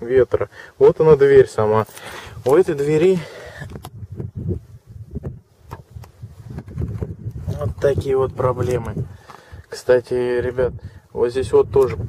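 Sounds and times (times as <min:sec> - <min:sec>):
wind buffeting microphone: 0:02.2 - 0:12.0.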